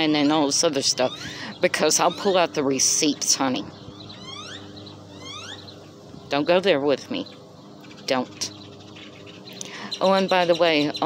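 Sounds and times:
steady low hum: 0.0s - 11.0s
bird whistled chirps: 4.0s - 5.8s.

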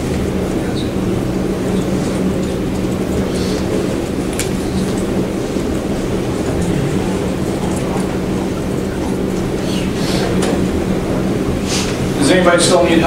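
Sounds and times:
constant hum: 0.0s - 13.0s
low room rumble: 0.0s - 13.0s.

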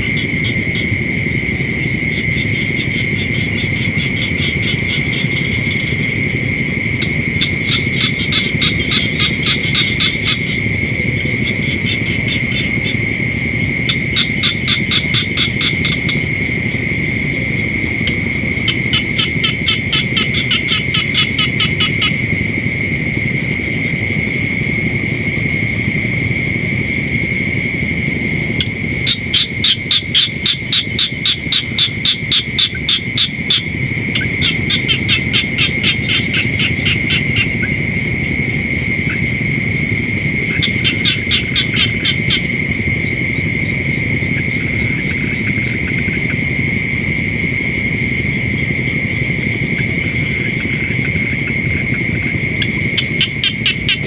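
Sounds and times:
frogs calling: 0.0s - 54.0s
steady high-pitched trill: 0.0s - 54.0s.

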